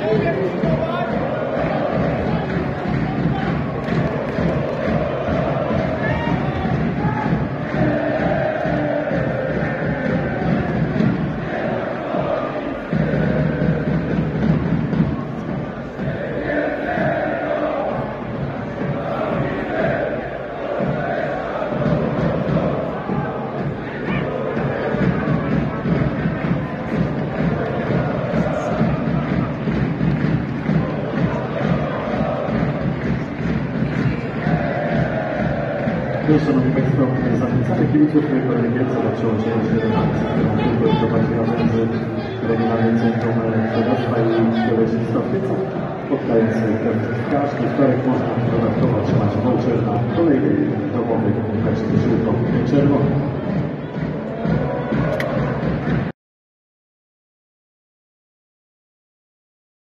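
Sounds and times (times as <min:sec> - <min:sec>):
crowd chanting and singing: 0:00.0 - 0:56.1.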